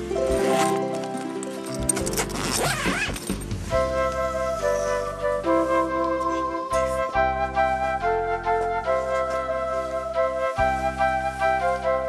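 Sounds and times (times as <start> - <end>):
background music with held notes: 0.0 - 12.0
tent zipper being pulled open: 0.1 - 3.8.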